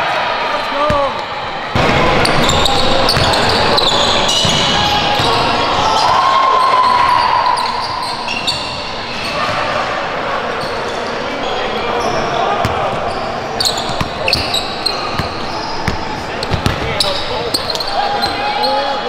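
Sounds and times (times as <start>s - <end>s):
players' voices calling out: 0.3s - 19.0s
sneaker squeaks: 2.2s - 19.0s
basketball bouncing on hardwood: 15.9s - 16.9s.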